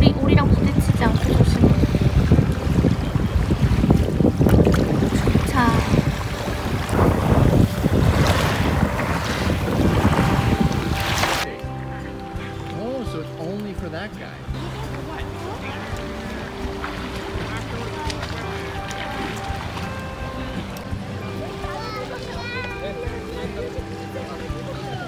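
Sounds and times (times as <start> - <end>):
water lapping: 0.0 - 25.0
wind buffeting microphone: 0.0 - 25.0.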